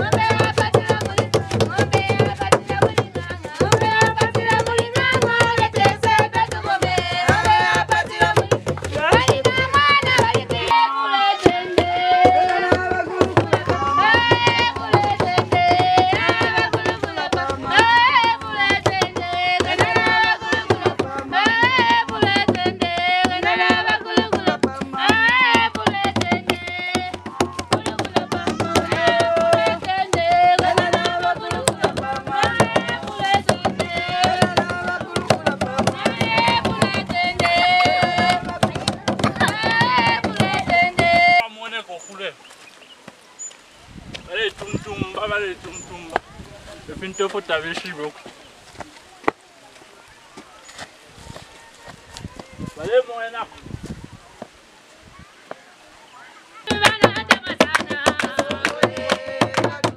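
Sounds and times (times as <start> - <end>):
wooden hand drums beating: 0.0 - 41.4, 56.6 - 59.9
high voices singing: 0.0 - 42.1, 56.6 - 59.9.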